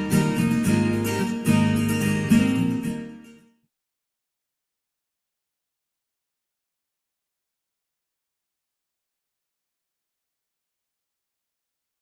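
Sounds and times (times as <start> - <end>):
strummed guitar: 0.0 - 3.6.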